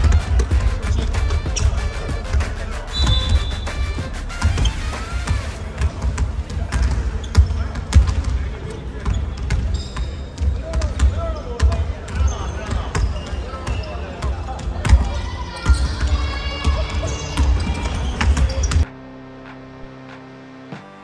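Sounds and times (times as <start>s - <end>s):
basketballs bouncing on wooden floor: 0.0s - 18.9s
voices in large hall: 0.0s - 21.0s.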